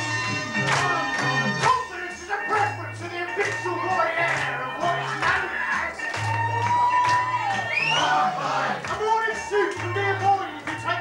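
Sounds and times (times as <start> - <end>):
live band music: 0.0 - 6.6
crowd noise: 2.8 - 11.0
singer whooping: 5.0 - 8.4.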